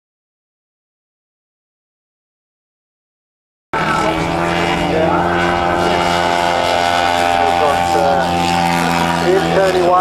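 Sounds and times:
model airplane engine running: 3.8 - 10.0.

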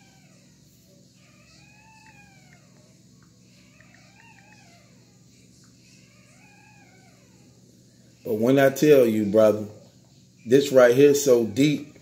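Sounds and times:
small animal meowing calls: 0.0 - 7.6.

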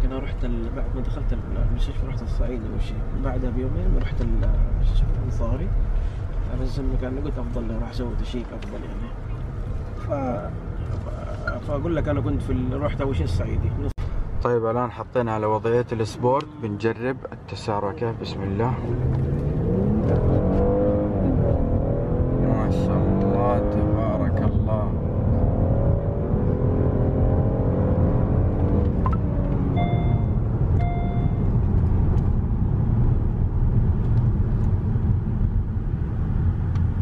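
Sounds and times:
car engine revving: 17.5 - 37.0
short electronic beeps: 29.1 - 31.5.

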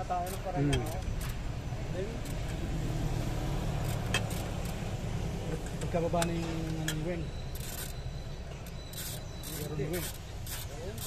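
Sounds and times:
wrench clicking on metal: 0.0 - 1.4, 3.7 - 4.9, 6.9 - 8.0, 8.6 - 11.0.

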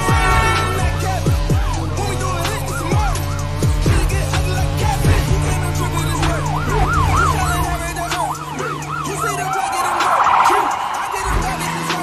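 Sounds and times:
music with low bass: 0.0 - 10.0, 10.7 - 12.0
police siren yelping: 0.0 - 12.0.

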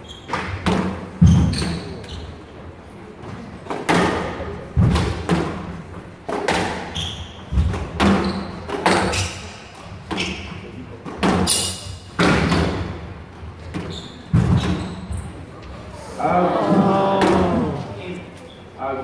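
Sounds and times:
shoes squeaking on wooden floor: 0.0 - 0.6, 6.8 - 9.3, 9.9 - 10.8, 13.3 - 16.0
squash ball hitting racket and walls: 0.1 - 2.4, 3.2 - 15.4.

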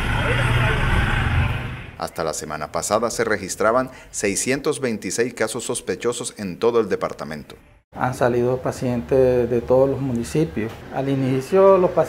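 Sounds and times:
motorcycle and traffic engine rumble: 0.0 - 2.0.

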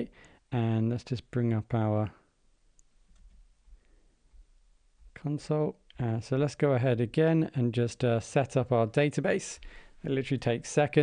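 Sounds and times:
person speaking: 0.0 - 2.8, 5.0 - 11.0.

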